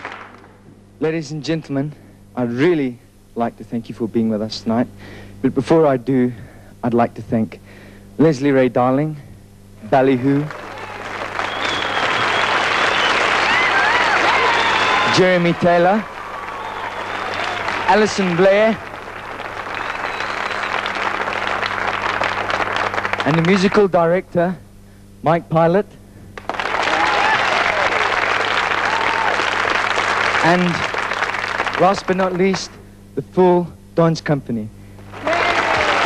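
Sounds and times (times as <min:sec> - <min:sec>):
audience applauding: 0:00.0 - 0:00.6, 0:10.4 - 0:23.9, 0:26.4 - 0:32.7, 0:35.0 - 0:36.0.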